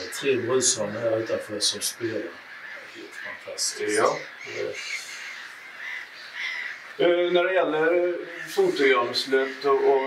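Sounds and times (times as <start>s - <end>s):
birds harsh calls: 0.0s - 10.0s.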